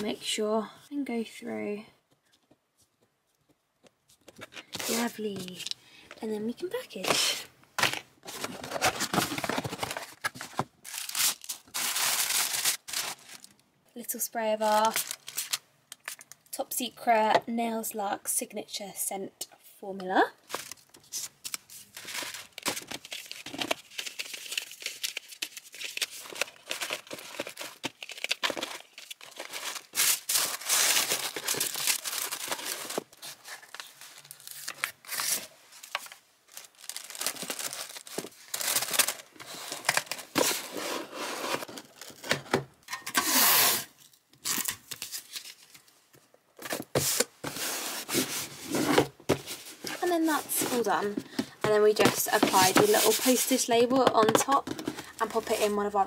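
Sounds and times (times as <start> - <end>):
tissue paper crinkling: 8.2 - 13.6, 14.6 - 16.3, 20.5 - 42.2, 46.9 - 53.9.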